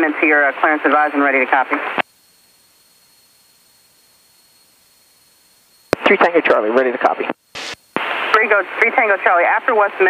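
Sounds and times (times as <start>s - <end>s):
faint high steady tone: 0.6s - 7.2s
headset intercom hiss: 5.9s - 10.0s
radio transmission click: 7.1s - 8.5s.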